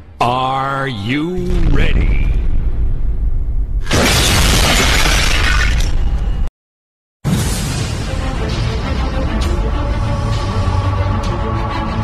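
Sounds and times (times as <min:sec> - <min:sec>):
deep bass rumble: 0:01.3 - 0:03.9
shattering crash: 0:03.8 - 0:06.0.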